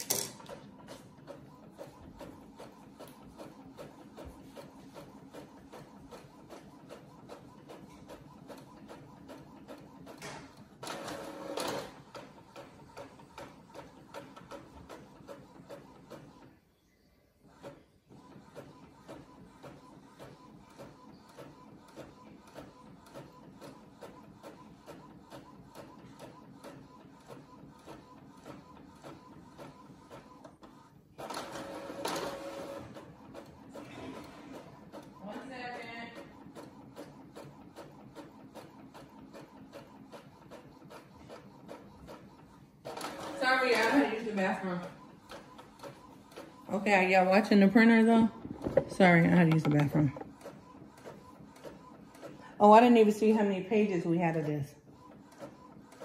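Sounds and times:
printer ticking: 0.0s - 16.6s, 17.4s - 56.0s.

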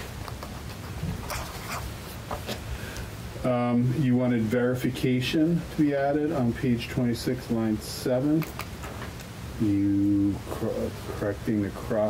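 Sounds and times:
pens scratching paper: 0.0s - 2.2s
low room hum: 0.0s - 12.0s.

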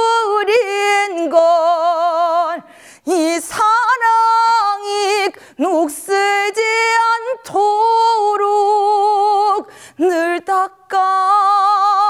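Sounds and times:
woman singing unaccompanied: 0.0s - 12.0s
singer breathing: 2.6s - 3.1s, 5.3s - 5.6s, 9.6s - 10.0s.

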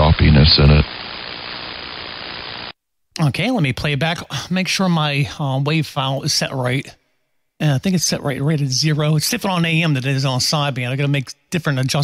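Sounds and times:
radio static hiss: 0.0s - 2.8s.

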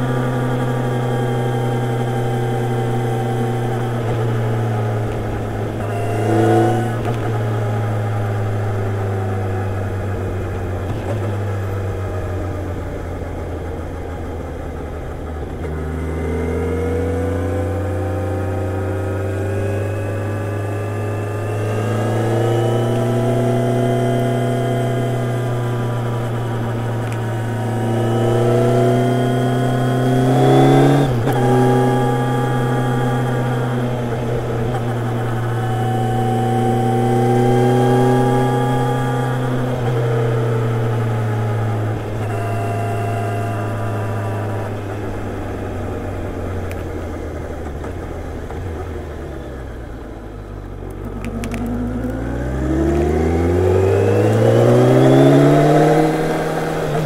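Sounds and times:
motorcycle engine cruising: 0.0s - 57.0s.

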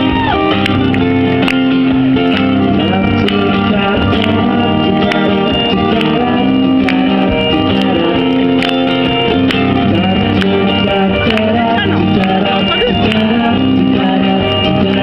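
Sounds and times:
live pop song with guitar: 0.0s - 15.0s
man singing into a microphone: 2.6s - 15.0s.

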